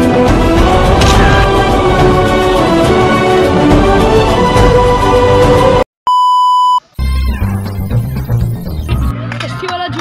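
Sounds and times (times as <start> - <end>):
high test-tone beep: 6.1 - 8.1.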